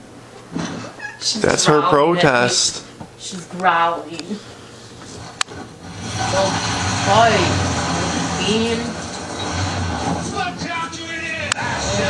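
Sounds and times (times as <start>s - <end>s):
cat yowling: 0.8s - 1.3s.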